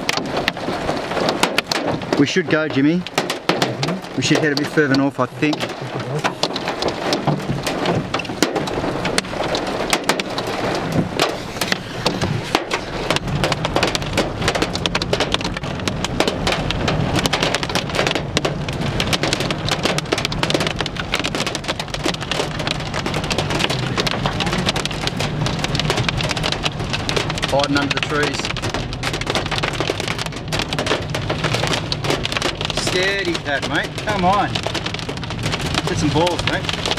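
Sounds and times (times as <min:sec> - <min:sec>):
low hum of car driving: 0:00.0 - 0:36.9
rain pelting car windscreen: 0:00.0 - 0:36.9.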